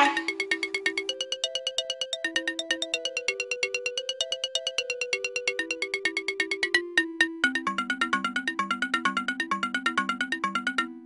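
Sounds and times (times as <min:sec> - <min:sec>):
light electronic tune: 0:00.0 - 0:09.4.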